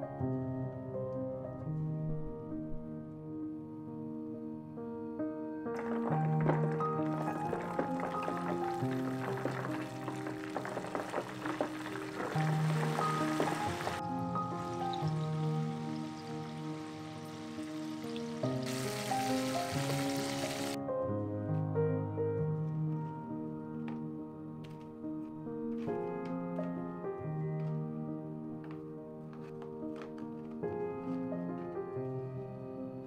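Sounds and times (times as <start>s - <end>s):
soft background music: 0.0s - 33.0s
chicken deep-frying in oil: 5.8s - 20.8s.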